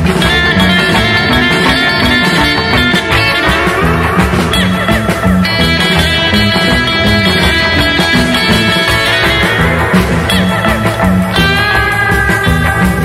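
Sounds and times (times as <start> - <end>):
bass: 0.0 - 13.0
drums: 0.0 - 13.0
electric lead guitar: 0.0 - 13.0
rhythm guitar: 0.0 - 13.0.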